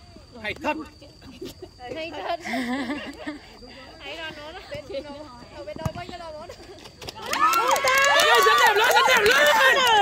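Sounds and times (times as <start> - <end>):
voices shouting loudly: 7.3 - 10.0.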